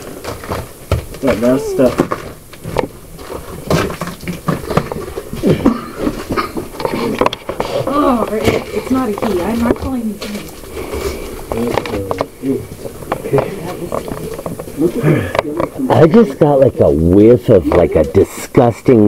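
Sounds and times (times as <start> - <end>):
footsteps on wooden steps: 0.0 - 18.2
indistinct voices talking low: 5.1 - 19.0.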